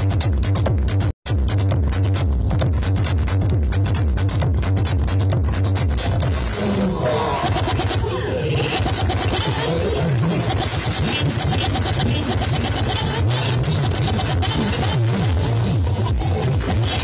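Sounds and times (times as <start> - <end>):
loud bass-heavy music: 0.0 - 17.0.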